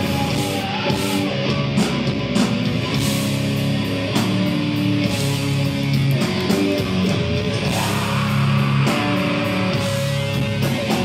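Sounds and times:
thrash band playing: 0.0 - 11.0.

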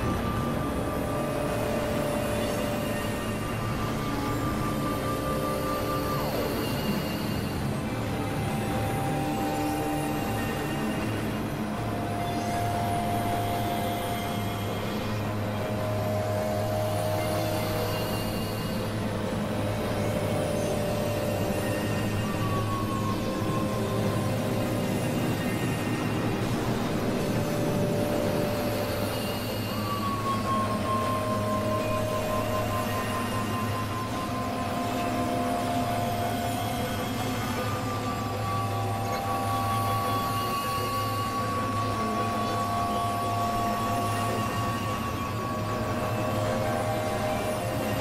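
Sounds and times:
low synthesizer drone: 0.0 - 48.0.

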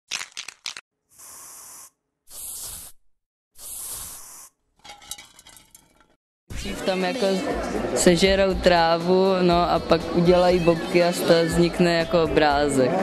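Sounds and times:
spray paint hissing: 1.1 - 3.0, 3.6 - 4.5.

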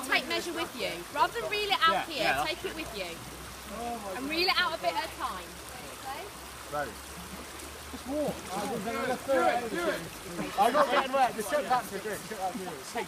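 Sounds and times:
river water rushing over stones: 0.0 - 13.0
voices talking: 0.0 - 13.0.

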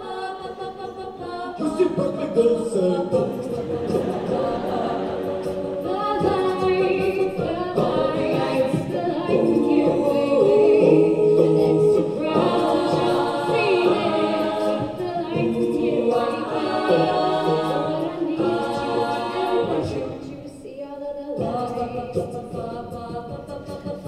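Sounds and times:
a cappella group singing harmonies: 0.0 - 24.0.

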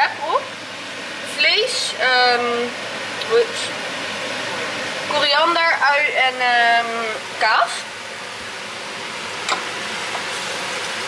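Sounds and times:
tortilla sizzling in a pan: 7.0 - 11.0.

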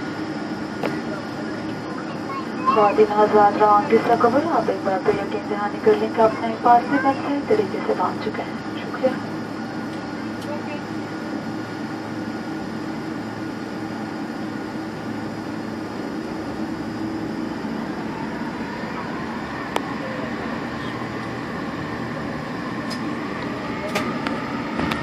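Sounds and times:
faint high whine: 0.0 - 24.7
airplane cabin engine drone: 0.0 - 25.0.

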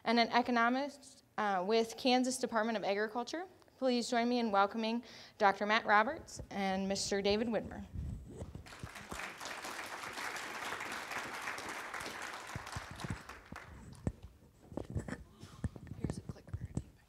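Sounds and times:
audience applauding: 8.6 - 14.1.

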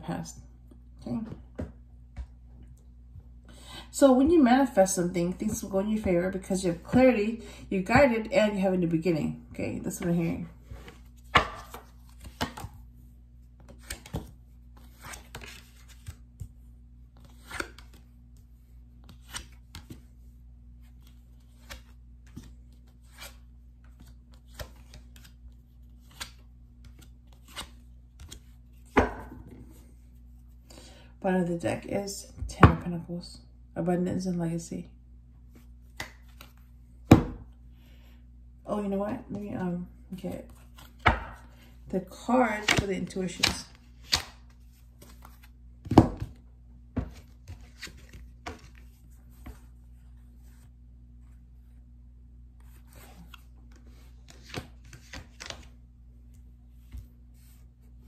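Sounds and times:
cards knocking and tapping on table: 11.2 - 12.7
cards snapping: 43.4 - 44.4.

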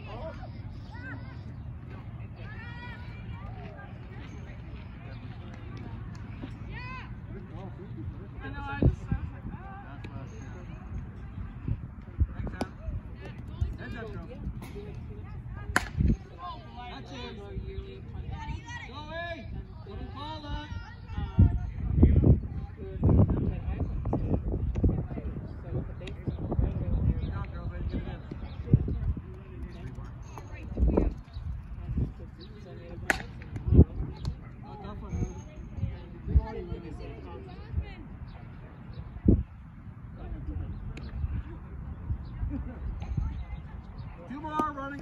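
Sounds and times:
faint voices: 0.0 - 45.0
bat hitting ball: 15.7 - 16.0, 33.1 - 33.4.

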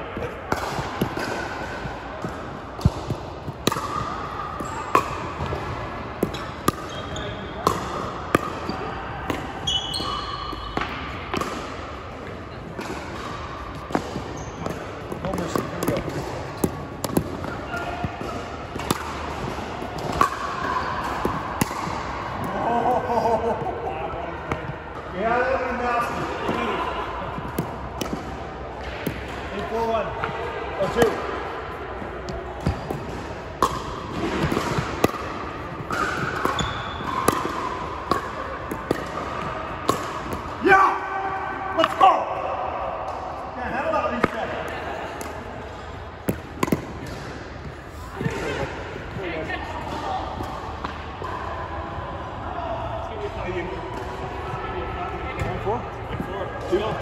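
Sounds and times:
players' voices: 0.0 - 57.0
ball bouncing on hardwood court: 32.3 - 40.4.

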